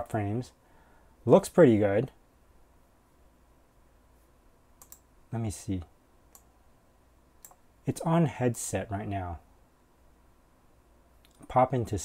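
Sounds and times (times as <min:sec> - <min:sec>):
computer mouse clicks: 0:04.8 - 0:05.1, 0:06.3 - 0:06.5, 0:07.4 - 0:07.6.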